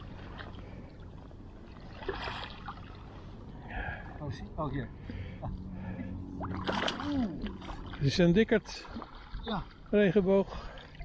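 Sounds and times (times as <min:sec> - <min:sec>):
low steady rumble: 0:00.0 - 0:11.0
small waves lapping: 0:00.0 - 0:11.0
faint water ticks: 0:05.0 - 0:06.6.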